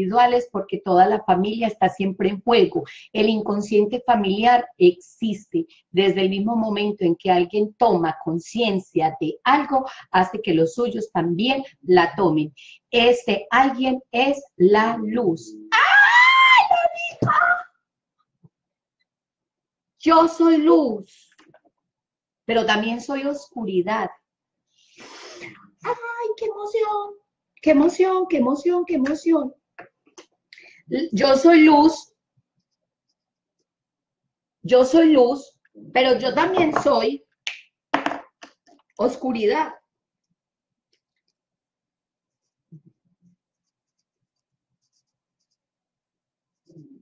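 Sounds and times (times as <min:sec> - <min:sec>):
woman speaking: 0:00.0 - 0:15.8, 0:16.4 - 0:17.6, 0:20.0 - 0:21.2, 0:22.5 - 0:24.2, 0:27.7 - 0:29.5, 0:30.9 - 0:32.1, 0:34.7 - 0:37.2, 0:39.0 - 0:39.8
pen scratching while writing: 0:32.6 - 0:33.6, 0:42.3 - 0:45.8.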